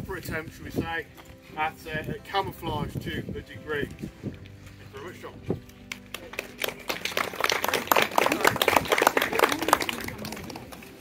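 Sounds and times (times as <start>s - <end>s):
crowd applauding: 5.9s - 11.0s.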